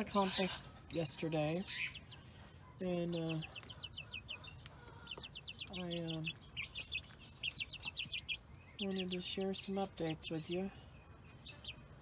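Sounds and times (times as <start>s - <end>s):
chick peeping: 0.0s - 12.0s.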